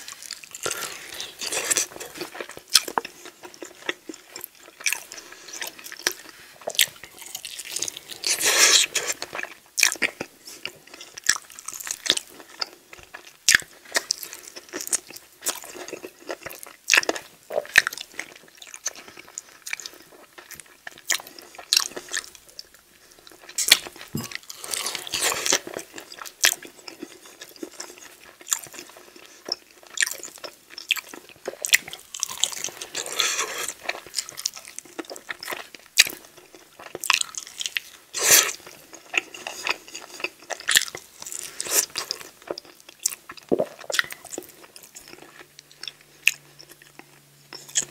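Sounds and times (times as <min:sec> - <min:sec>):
chewing and biting: 0:00.1 - 0:22.7, 0:23.3 - 0:47.9
wet mouth sounds: 0:43.4 - 0:44.1.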